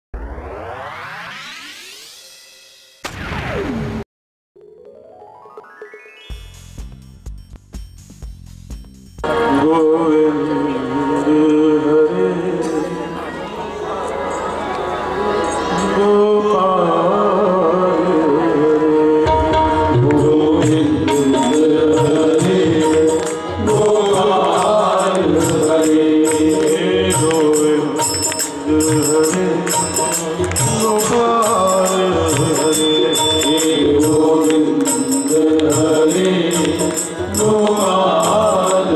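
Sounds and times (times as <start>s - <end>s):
synthesized swelling tone: 0.2s - 3.0s
falling synth sweep: 0.2s - 4.0s, 4.6s - 6.6s
sharp synth hit: 0.2s - 4.0s
rhythmic percussion ticking: 4.8s - 9.4s, 19.3s - 38.9s
men singing devotional song: 9.2s - 13.1s, 15.7s - 38.9s
harmonium: 9.2s - 38.9s.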